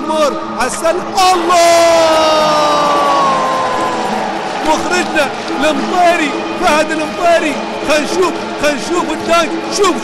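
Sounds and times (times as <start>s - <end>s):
arena crowd noise: 0.0s - 10.0s
man shouting excitedly: 0.9s - 3.5s.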